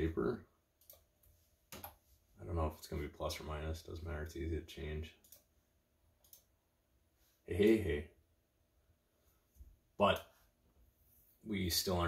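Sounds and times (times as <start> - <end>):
computer mouse clicks: 0.8 - 1.1, 1.7 - 2.0, 5.2 - 5.5, 6.2 - 6.5.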